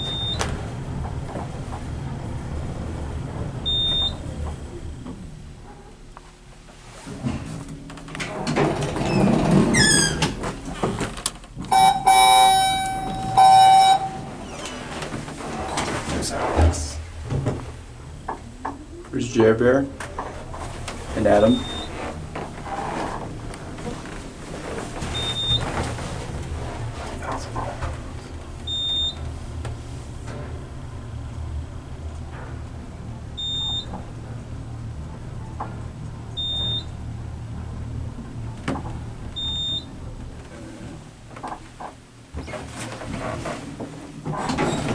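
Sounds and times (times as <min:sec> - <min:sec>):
elevator door sliding: 0:00.0 - 0:44.9
door squeak: 0:08.3 - 0:10.4, 0:11.7 - 0:14.9, 0:21.4 - 0:23.2, 0:44.4 - 0:44.9
flat electronic beeps: 0:11.7 - 0:14.3, 0:21.5 - 0:21.9.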